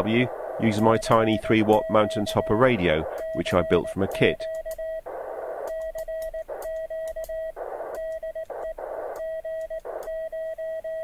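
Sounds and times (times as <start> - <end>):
radio receiver hiss: 0.0 - 10.2
morse code beeps: 0.0 - 11.0.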